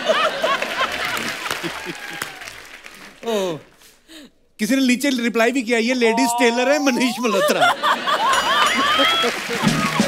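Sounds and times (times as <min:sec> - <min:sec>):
audience laughing: 0:00.0 - 0:02.2, 0:07.0 - 0:10.0
audience applauding: 0:00.0 - 0:03.7, 0:08.0 - 0:10.0.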